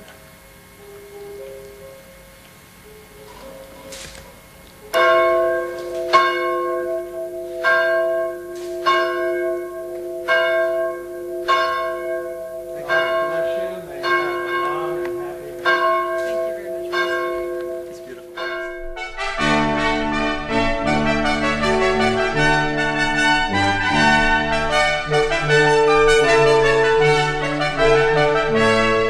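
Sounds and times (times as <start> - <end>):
church bell ringing: 0.0 - 29.0.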